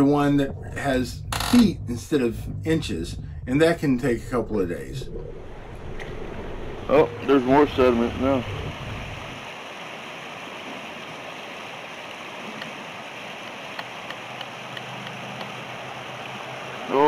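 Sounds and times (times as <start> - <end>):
water gushing from hose: 5.5 - 17.0.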